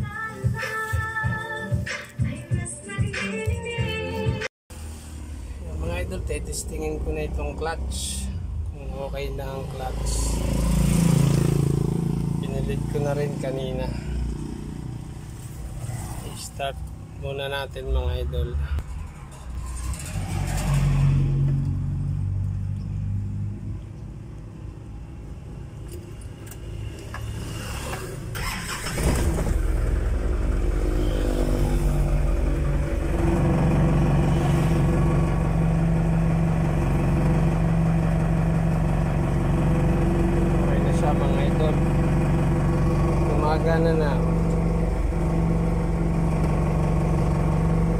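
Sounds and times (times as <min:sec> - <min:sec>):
vehicle engine starting and idling: 0:04.7 - 0:23.6, 0:25.8 - 0:47.9.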